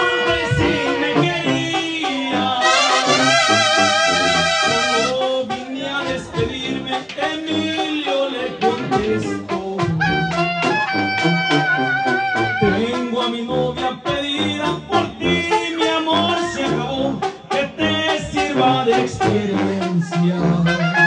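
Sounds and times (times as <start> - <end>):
horn holding long vibrato note: 0.0 - 5.5, 10.0 - 12.9
brass horns: 0.0 - 21.0
bass drum and snare with cymbal: 8.6 - 11.8.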